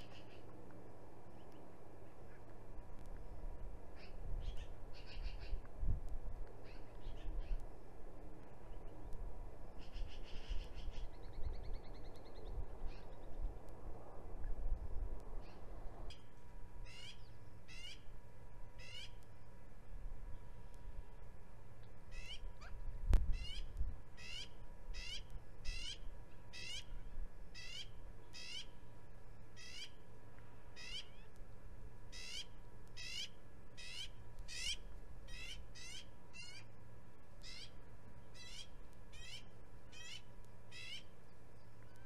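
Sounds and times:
bird calling: 4.0 - 5.6, 16.8 - 18.1, 27.6 - 28.8, 30.8 - 31.3, 32.1 - 36.7, 37.4 - 42.0.

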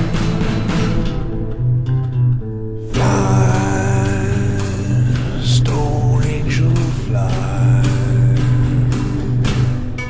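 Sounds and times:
psychedelic rock guitar and bass: 0.0 - 10.0.

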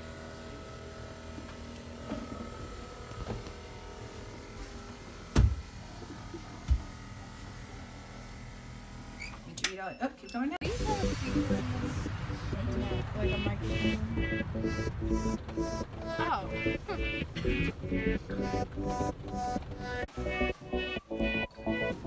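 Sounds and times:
stairlift motor whining: 11.3 - 22.0.

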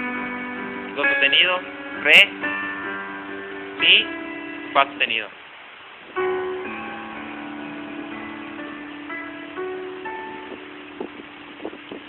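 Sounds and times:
piano notes ringing: 0.0 - 12.0.

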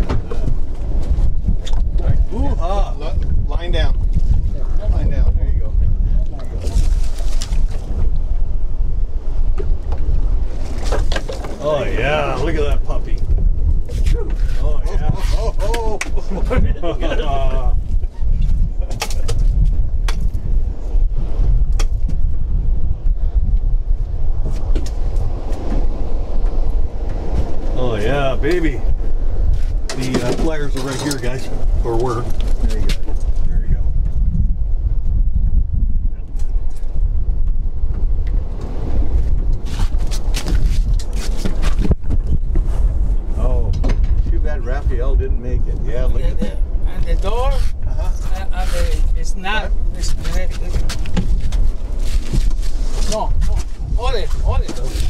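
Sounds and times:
wind rumble on microphone: 0.0 - 55.0.

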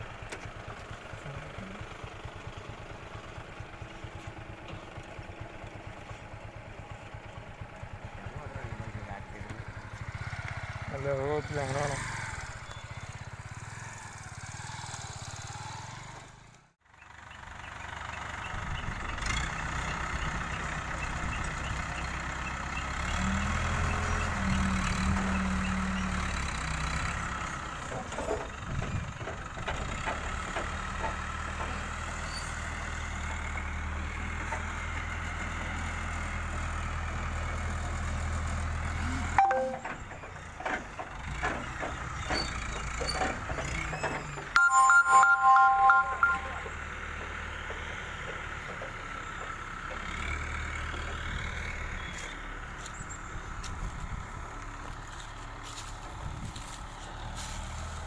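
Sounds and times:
crane diesel engine working: 16.9 - 58.0.

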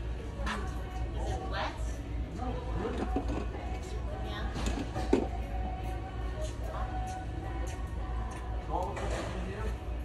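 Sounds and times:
background music: 0.0 - 10.0
steady low hum: 0.0 - 10.0.

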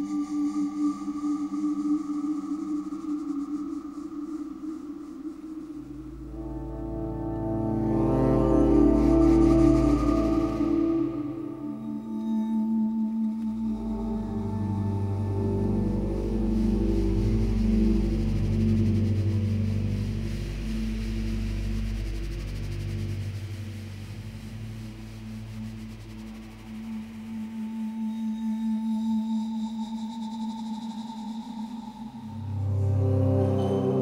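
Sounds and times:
synthesizer drone music: 5.7 - 12.2, 32.2 - 34.0.

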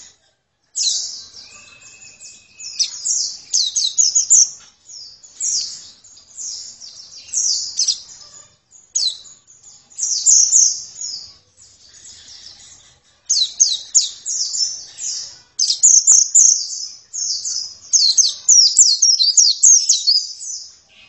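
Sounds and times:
bird twittering song: 0.0 - 21.0.

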